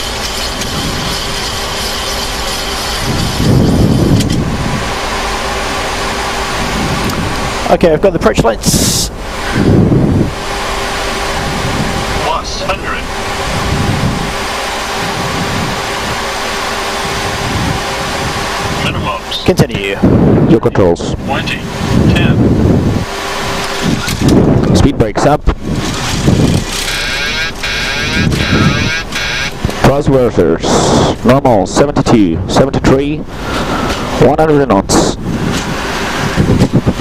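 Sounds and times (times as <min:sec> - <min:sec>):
low rumble: 0:00.0 - 0:34.2
aircraft engine noise: 0:00.0 - 0:37.0
airflow around cockpit: 0:00.0 - 0:37.0.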